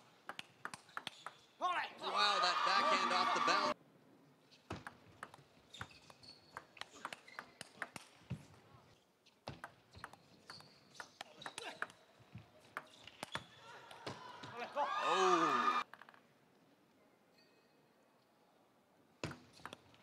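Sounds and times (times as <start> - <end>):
loud shout: 1.6 - 3.8, 13.7 - 15.8
crowd noise: 2.0 - 3.8, 13.9 - 15.8.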